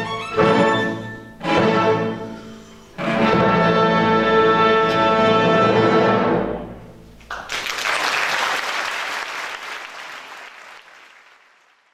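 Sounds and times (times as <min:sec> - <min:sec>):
audience applause: 0:07.3 - 0:11.9.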